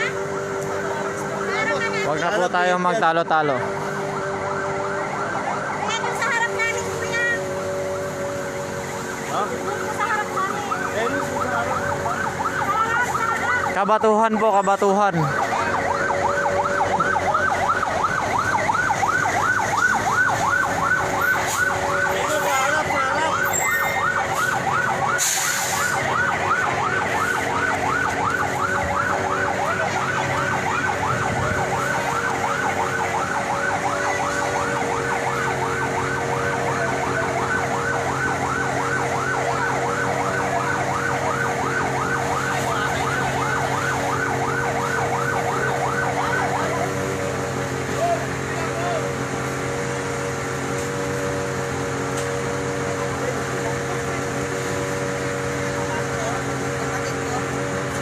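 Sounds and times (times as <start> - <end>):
fire truck siren yelping: 0.0 - 58.0.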